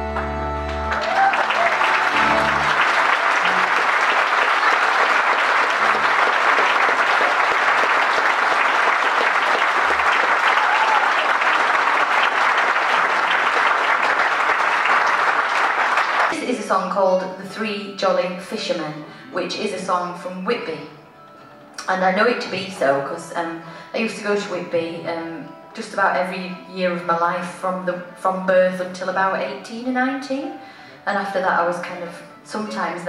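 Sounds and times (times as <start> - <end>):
folk band chord on guitars: 0.0 - 1.0, 1.8 - 5.1
double bass: 0.0 - 1.2, 1.9 - 3.9
audience applauding: 0.0 - 16.4.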